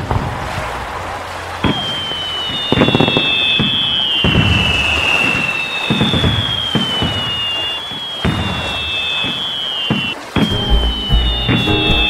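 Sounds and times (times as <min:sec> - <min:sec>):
firework booms: 0:01.6 - 0:11.7
firework crackle: 0:01.6 - 0:11.8
firework whistles: 0:01.6 - 0:12.0.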